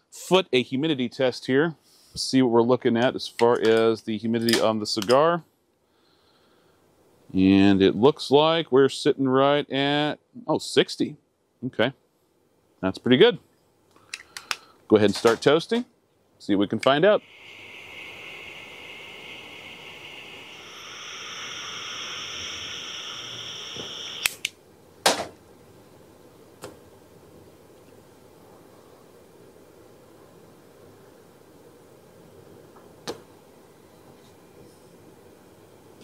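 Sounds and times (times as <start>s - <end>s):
lighter clicks: 16.8s - 24.6s
torch lighter flame hissing: 16.8s - 24.6s.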